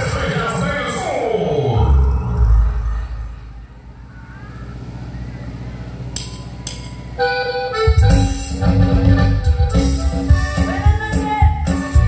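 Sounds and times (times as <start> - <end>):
accordion-like chord: 7.2 - 12.0.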